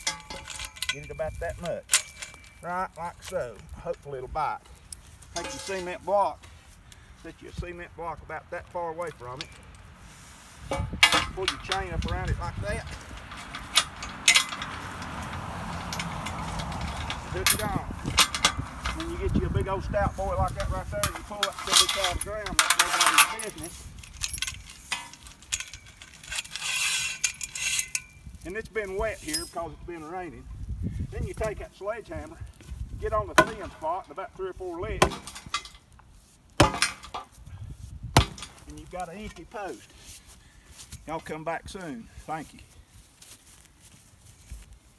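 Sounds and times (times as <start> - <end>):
chain clinking: 0.0 - 3.5, 5.3 - 6.0, 10.7 - 28.6, 29.2 - 29.8
sledgehammer striking concrete: 35.0 - 35.4, 36.6 - 37.2, 38.1 - 38.6.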